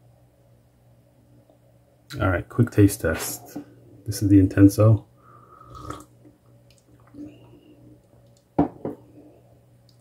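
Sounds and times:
person slurping coffee: 0:05.6 - 0:06.1.

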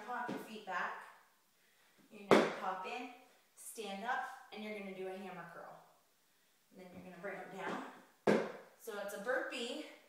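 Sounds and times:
woman speaking: 0:02.1 - 0:05.8, 0:06.7 - 0:08.0, 0:08.8 - 0:10.0.

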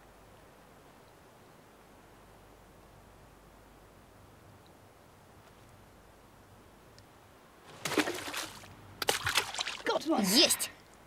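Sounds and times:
water splashing: 0:07.7 - 0:10.2.

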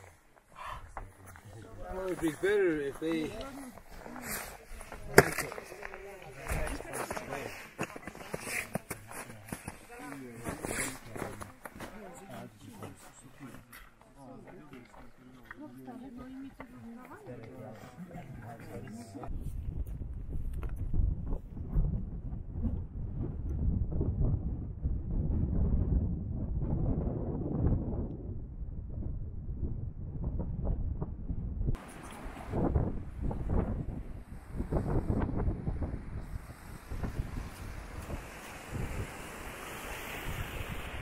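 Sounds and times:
wind buffeting microphone: 0:19.2 - 0:41.0.

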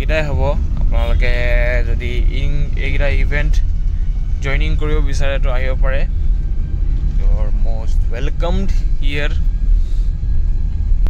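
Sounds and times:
road and engine rumble in car: 0:00.0 - 0:11.0.

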